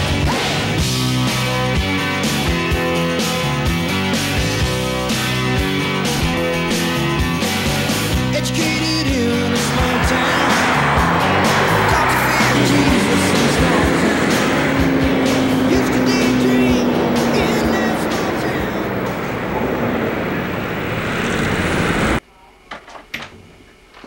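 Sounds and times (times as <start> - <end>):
soundtrack music: 0.7 - 19.5
car engine driving past: 5.1 - 22.2.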